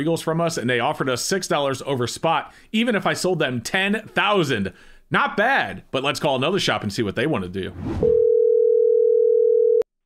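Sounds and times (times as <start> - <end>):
telephone ringback tone: 8.0 - 9.8.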